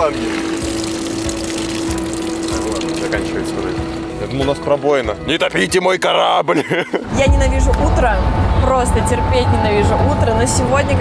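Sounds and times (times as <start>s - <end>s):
water hissing from hose nozzle: 0.0s - 4.2s.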